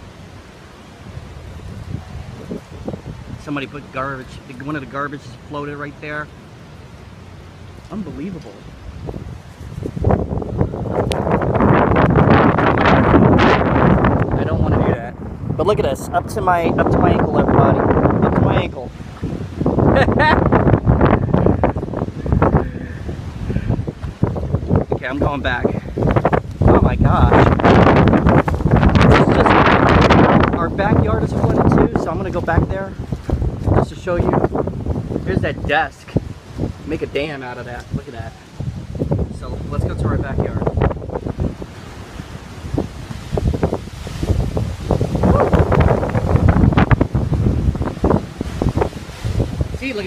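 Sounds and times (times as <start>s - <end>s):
wind buffeting microphone: 0.0s - 50.0s.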